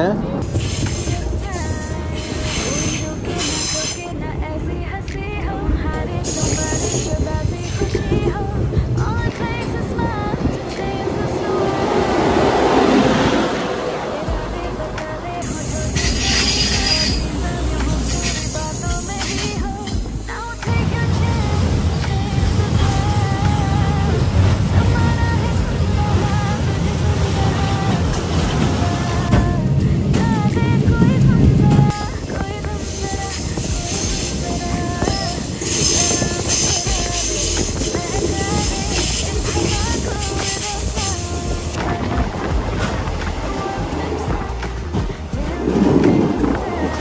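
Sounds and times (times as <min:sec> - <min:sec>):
light melodic background music: 0:00.0 - 0:47.0
rail hiss: 0:00.0 - 0:47.0
train wheels rumbling on rail: 0:00.0 - 0:47.0.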